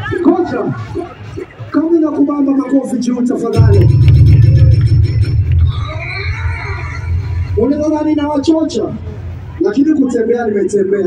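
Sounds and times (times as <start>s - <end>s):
faint music: 0.0s - 11.0s
loud low bass rumble: 3.6s - 10.3s.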